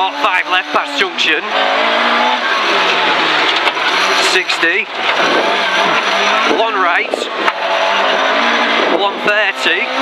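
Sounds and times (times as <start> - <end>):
tyre and gravel noise: 0.0 - 9.2
rally car engine running hard: 0.0 - 10.0.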